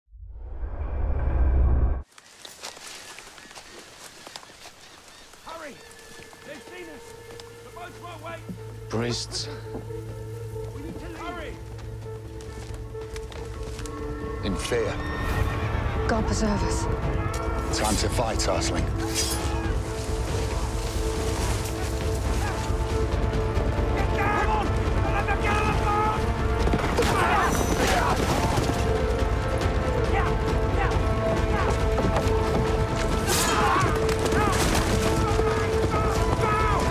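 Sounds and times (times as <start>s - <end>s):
footsteps through reeds and water: 2.0s - 14.3s, 19.0s - 23.9s
tense music with held notes: 5.1s - 36.9s.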